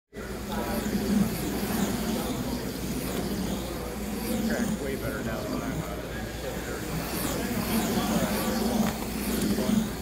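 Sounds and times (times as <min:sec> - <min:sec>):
crowd talking: 0:00.1 - 0:10.0
slot car motors whining: 0:00.2 - 0:10.0.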